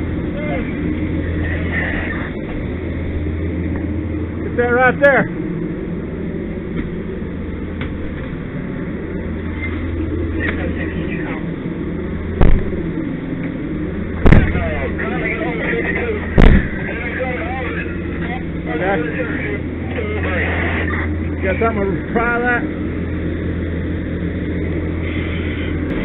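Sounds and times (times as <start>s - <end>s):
fire engine running: 0.0s - 26.0s
loud sharp bangs: 12.4s - 12.9s, 14.2s - 15.0s, 16.3s - 17.2s.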